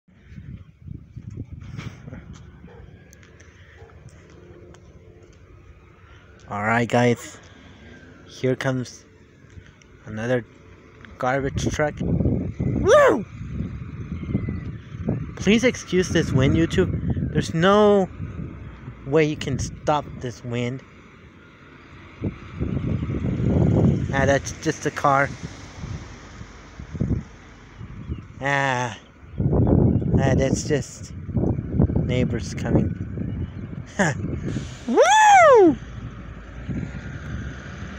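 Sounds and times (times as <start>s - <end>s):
wind buffeting microphone: 0.1s - 6.5s, 11.1s - 20.2s, 22.0s - 28.4s, 29.0s - 37.9s.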